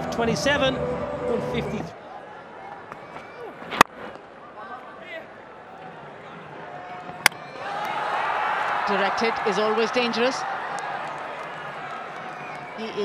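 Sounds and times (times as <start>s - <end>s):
stadium crowd murmur: 1.6s - 13.0s.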